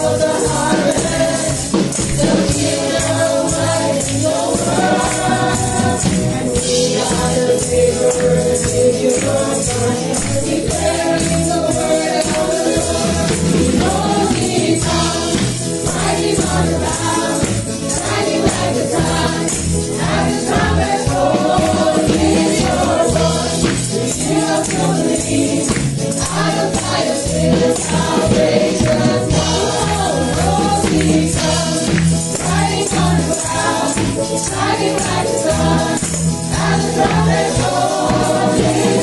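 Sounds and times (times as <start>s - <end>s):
accompaniment with steady beat: 0.0s - 39.0s
tambourine jingling: 0.0s - 39.0s
women singing into microphones: 0.0s - 39.0s.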